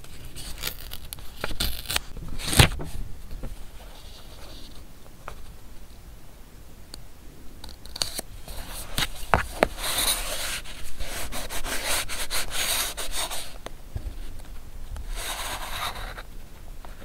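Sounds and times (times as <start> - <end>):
metal tool scraping paper: 7.9 - 13.6.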